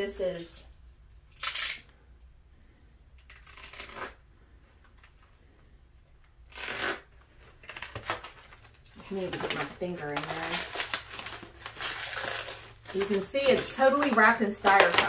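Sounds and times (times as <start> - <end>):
foam packing wrap crinkling: 6.4 - 15.0.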